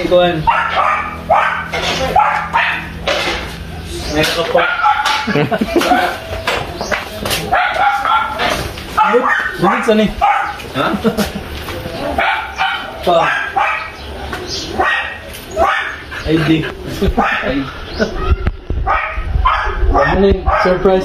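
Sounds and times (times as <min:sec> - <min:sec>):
dog barking: 0:00.4 - 0:03.0, 0:04.4 - 0:06.3, 0:07.5 - 0:10.6, 0:12.2 - 0:14.0, 0:14.7 - 0:16.2, 0:17.2 - 0:17.7, 0:18.8 - 0:20.9
excited voices talking and laughing: 0:05.0 - 0:07.5, 0:15.2 - 0:18.8.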